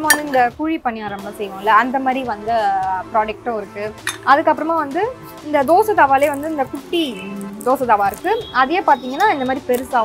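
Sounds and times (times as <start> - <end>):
small metal pans clinking: 0.0 - 0.5, 4.0 - 4.3.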